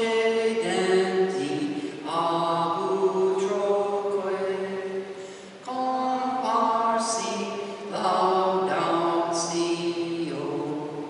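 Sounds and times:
person chanting unaccompanied: 0.0 - 11.0.

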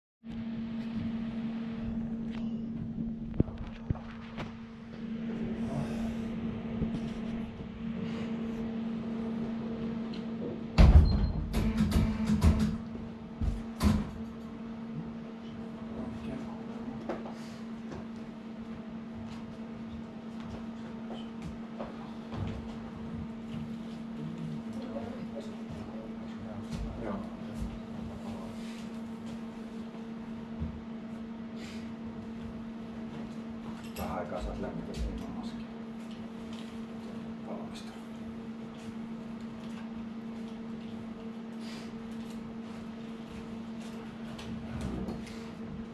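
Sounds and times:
low electrical hum: 0.2 - 45.9.

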